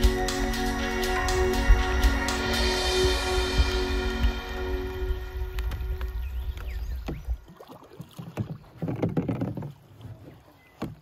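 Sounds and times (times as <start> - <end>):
low rumble: 0.0 - 7.4
water dripping: 3.6 - 9.0
kayak paddle splashing in water: 5.5 - 11.0
small knocks: 8.3 - 9.8.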